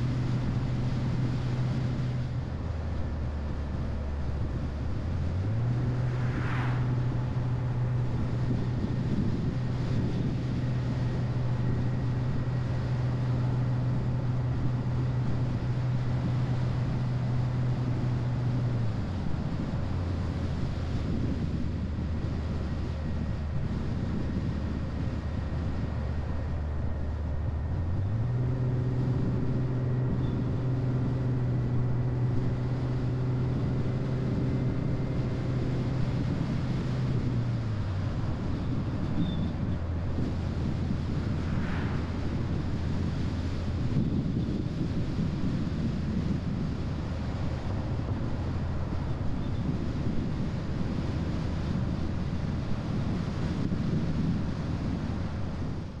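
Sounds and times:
car engine hum: 0.0 - 56.0
tyre and wind noise: 0.0 - 56.0.

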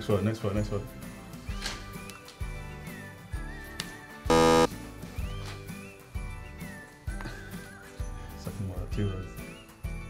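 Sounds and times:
loud buzzer sound effect: 4.3 - 4.7
background music with steady beat: 4.3 - 5.4.

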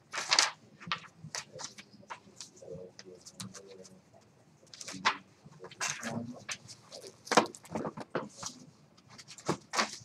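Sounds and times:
low voice-like sound: 1.4 - 7.3.

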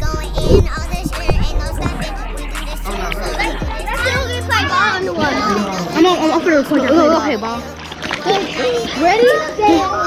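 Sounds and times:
background music with bass line: 0.0 - 10.0
children's voices: 0.0 - 10.0.

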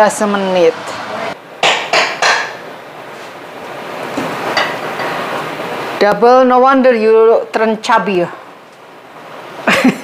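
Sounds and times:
utensils knocking against cookware: 1.6 - 2.6.

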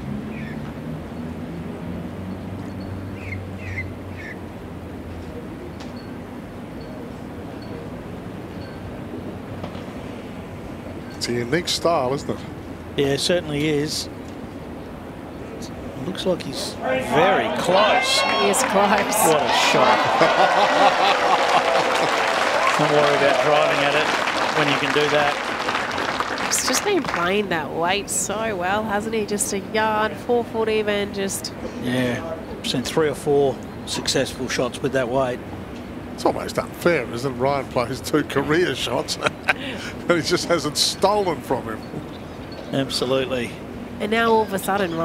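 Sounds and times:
bird chirping: 2.3 - 4.4, 41.6 - 43.1
low steady hum: 4.0 - 45.0
crowd applauding: 16.8 - 27.3
laughter in bursts: 19.8 - 22.3, 39.1 - 40.1.

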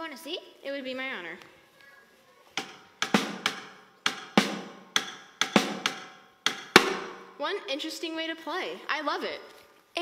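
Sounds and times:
small drum struck with sticks: 2.6 - 7.3.

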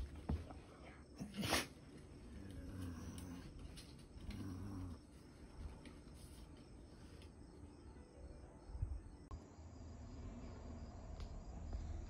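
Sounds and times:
dog grumbling: 2.3 - 3.5.

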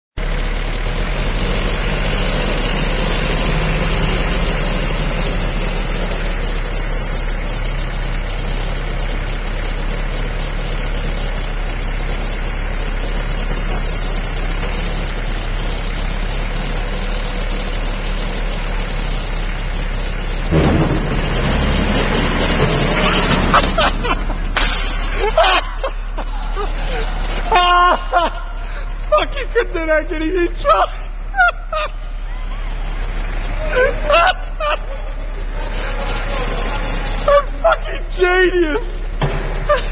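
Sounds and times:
machinery droning: 0.2 - 39.9.

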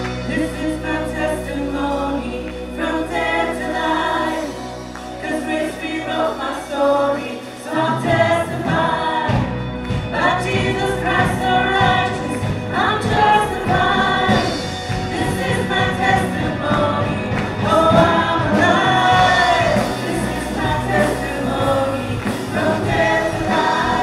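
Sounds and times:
backing vocalists: 0.0 - 24.0
drums: 0.0 - 24.0
electric guitars: 0.0 - 24.0
female lead singer: 0.0 - 24.0.

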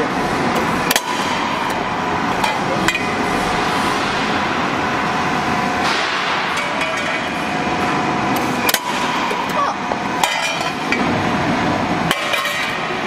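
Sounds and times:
roll forming machine running: 0.0 - 13.0.

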